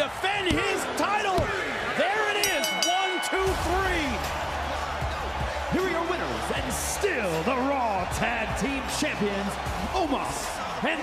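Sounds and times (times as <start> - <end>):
voices: 0.0 - 4.2
ring bell ringing: 2.3 - 4.3.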